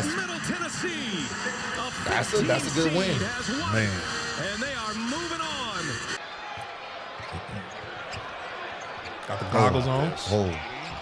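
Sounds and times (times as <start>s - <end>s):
faint arena background noise: 0.0s - 11.0s.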